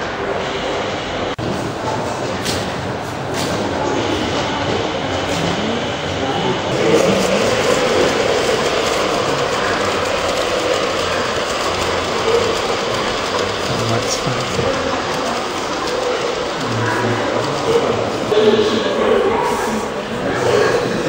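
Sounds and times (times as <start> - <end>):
model train wheels rolling on rail: 0.0 - 21.0.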